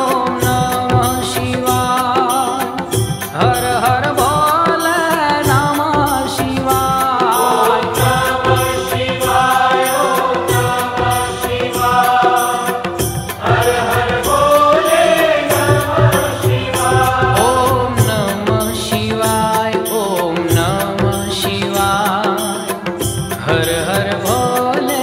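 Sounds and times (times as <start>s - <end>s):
devotional chant singing: 0.0s - 25.0s
instrumental accompaniment with beat: 0.0s - 25.0s.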